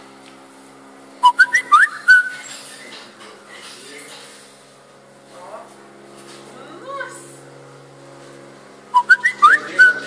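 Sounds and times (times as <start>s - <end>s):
rising whistled chirps: 1.2s - 2.4s, 9.0s - 10.0s.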